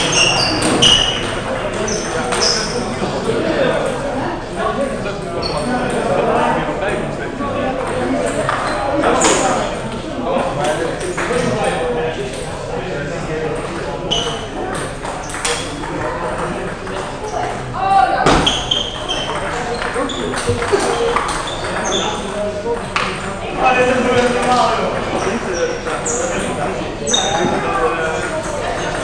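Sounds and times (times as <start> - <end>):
people talking: 0.0 - 29.0
table tennis balls clicking: 14.2 - 17.6, 18.6 - 23.4.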